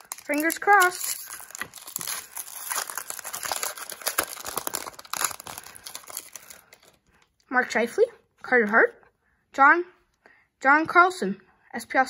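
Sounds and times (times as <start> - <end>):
foil wrapper crinkling and tearing: 0.0 - 7.2.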